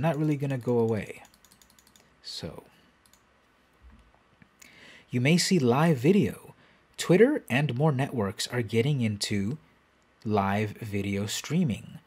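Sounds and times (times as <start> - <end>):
soft hiss: 0.0 - 12.0
computer mouse clicks: 0.1 - 2.2, 3.0 - 3.3.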